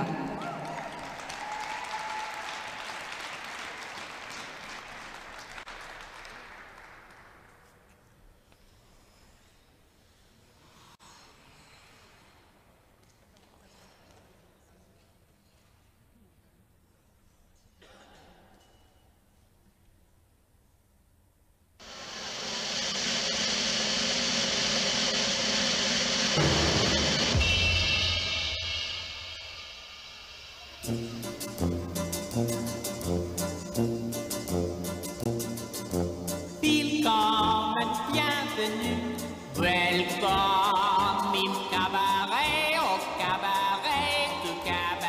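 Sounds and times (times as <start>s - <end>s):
audience applauding: 0.0s - 7.8s
loud steady rush of noise: 21.8s - 31.2s.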